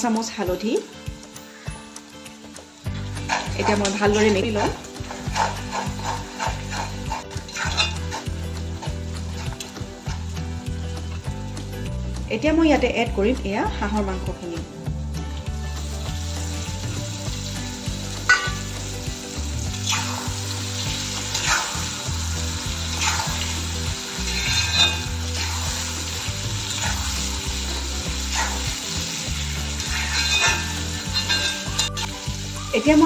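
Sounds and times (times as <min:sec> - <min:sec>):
meat sizzling: 0:00.0 - 0:33.0
spatula scraping and stirring: 0:02.9 - 0:10.5, 0:19.8 - 0:32.1.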